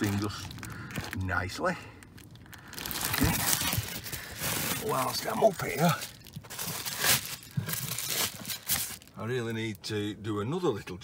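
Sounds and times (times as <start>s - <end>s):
bubble wrap crinkling: 0.0s - 9.4s.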